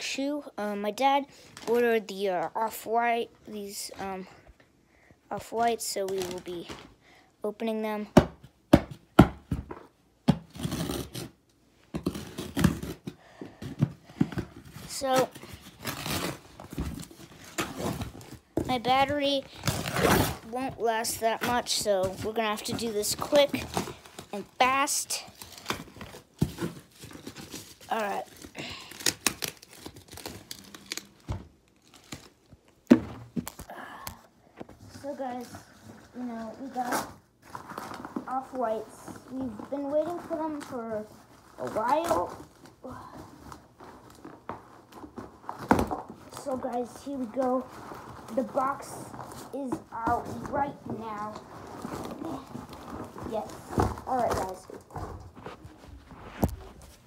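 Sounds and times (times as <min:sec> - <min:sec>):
packaging crinkling and rustling: 0:12.0 - 0:33.8, 0:34.7 - 0:57.0
cardboard scraping and rustling: 0:43.6 - 0:57.0.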